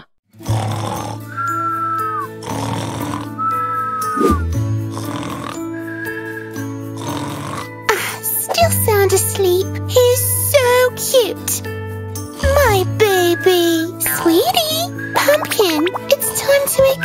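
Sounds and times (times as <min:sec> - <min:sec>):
cartoon snoring with whistled exhale: 0:00.4 - 0:08.6, 0:13.3 - 0:17.0
light background music: 0:00.4 - 0:17.0.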